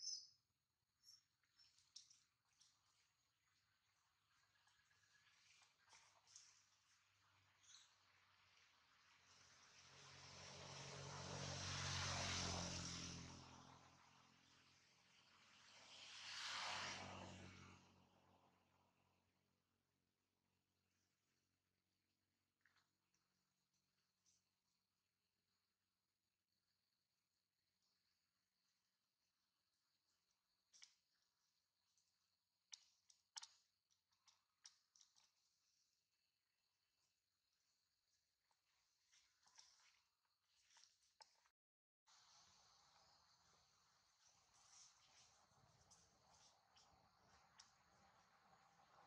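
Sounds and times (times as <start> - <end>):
distant vehicle passing by: 8.2 - 19.1, 42.3 - 49.0.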